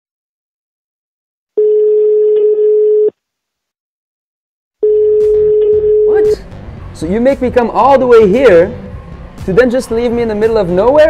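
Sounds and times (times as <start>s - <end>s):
telephone ringback tone: 1.6s - 3.1s, 4.8s - 6.2s.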